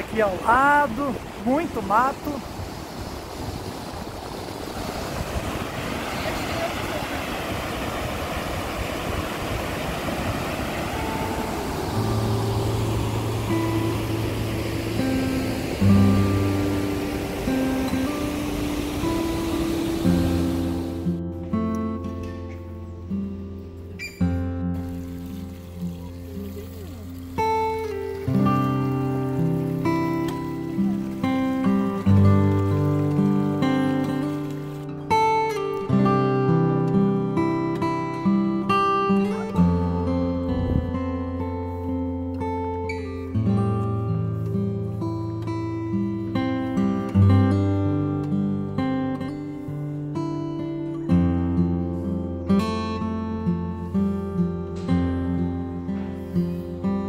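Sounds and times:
waterfall rushing: 0:00.0 - 0:21.2, 0:24.4 - 0:35.4
acoustic guitar music: 0:00.0 - 0:57.0.

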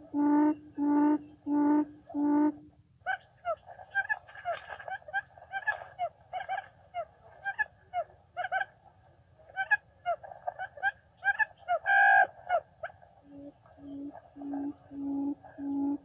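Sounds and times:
low repeated hoot: 0:00.0 - 0:02.8, 0:13.2 - 0:16.0
quail chirping: 0:03.1 - 0:08.7, 0:09.6 - 0:16.0.

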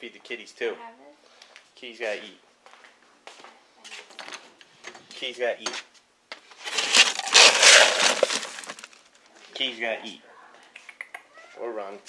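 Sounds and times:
plastic bag rustling and crinkling: 0:06.6 - 0:09.4.

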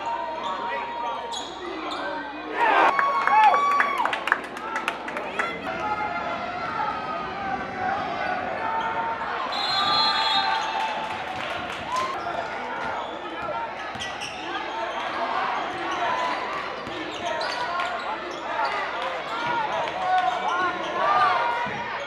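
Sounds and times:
crowd calling out and talking: 0:00.0 - 0:22.0.

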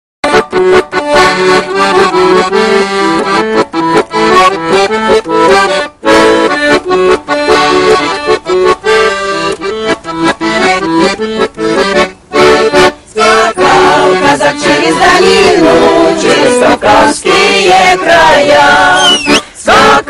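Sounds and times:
accordion playing folk tune: 0:00.2 - 0:20.0.

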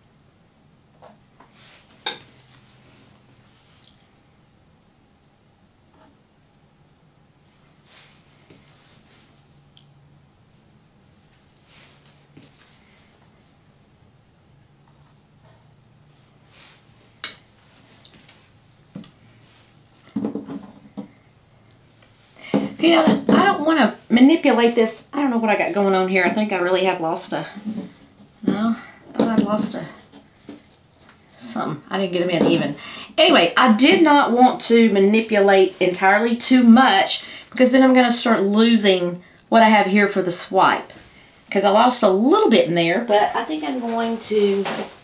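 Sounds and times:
soft scrape: 0:01.5 - 0:03.8, 0:07.6 - 0:09.5, 0:11.6 - 0:13.1
canvas and tools knocking: 0:20.1 - 0:21.2.

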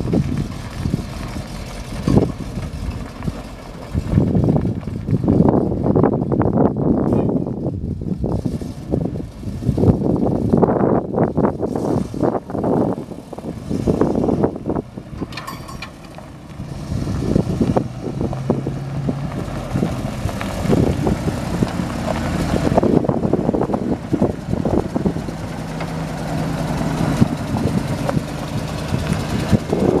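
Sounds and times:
truck engine running: 0:00.0 - 0:30.0.

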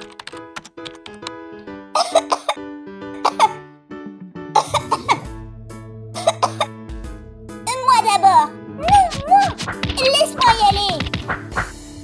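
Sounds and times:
background music: 0:00.0 - 0:12.0
person coughing: 0:02.0 - 0:02.6, 0:03.2 - 0:03.6, 0:04.6 - 0:05.3, 0:06.2 - 0:06.7.

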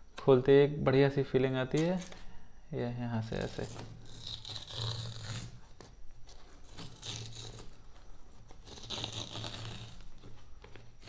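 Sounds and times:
paper tear strip ripping: 0:03.4 - 0:10.9.

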